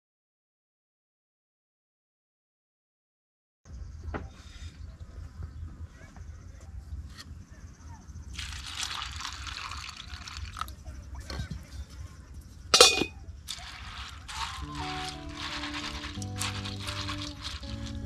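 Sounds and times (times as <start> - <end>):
wind buffeting microphone: 10.8 - 13.5.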